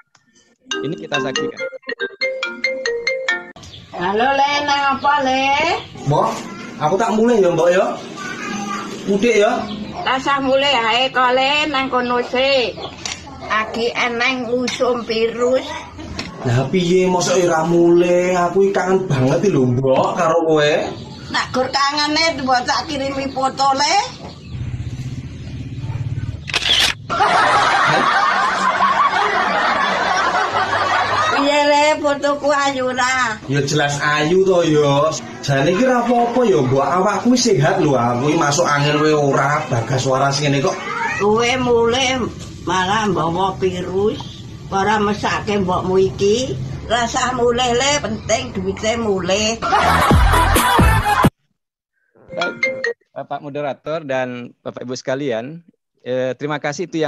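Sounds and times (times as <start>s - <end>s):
person speaking: 0.7s - 1.8s, 52.3s - 52.9s
phone ringtone: 0.7s - 3.6s, 52.3s - 53.1s
laughter: 27.1s - 31.5s, 49.6s - 51.3s.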